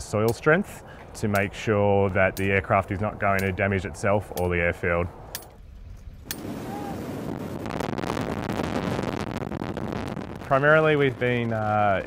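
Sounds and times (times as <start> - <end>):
wind buffeting camera: 0.0 - 12.0.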